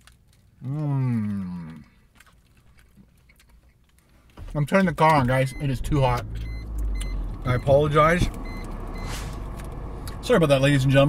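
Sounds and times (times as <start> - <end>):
people chewing: 0.0 - 5.2.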